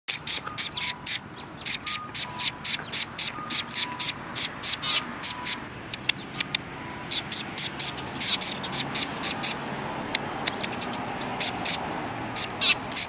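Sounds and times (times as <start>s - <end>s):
sparrows chirping: 0.1s - 13.0s.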